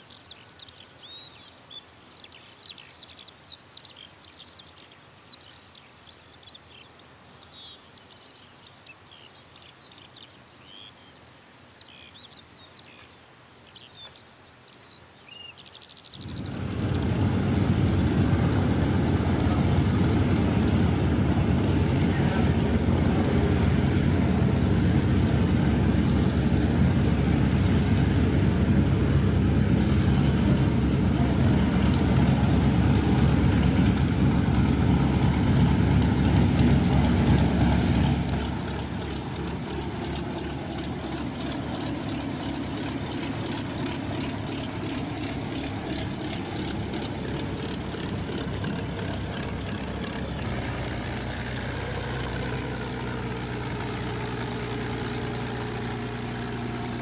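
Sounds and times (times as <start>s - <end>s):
propeller plane engine running: 16.1s - 57.0s.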